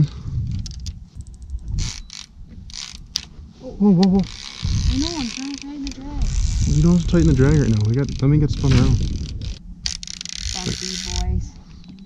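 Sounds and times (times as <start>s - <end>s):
fishing reel clicker ratcheting: 0.5s - 3.3s, 4.0s - 8.4s, 9.0s - 11.4s.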